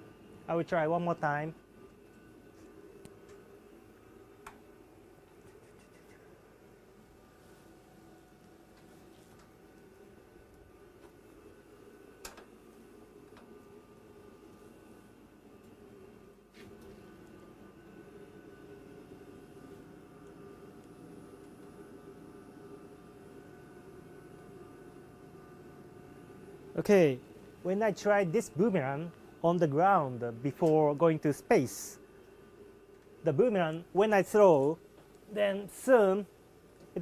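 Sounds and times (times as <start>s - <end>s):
fans and equipment hum: 0.0s - 37.0s.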